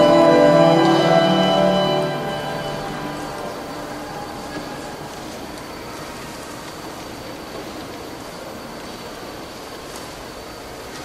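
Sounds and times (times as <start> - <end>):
piano trio chord: 0.0 - 4.4
room noise: 0.0 - 11.0.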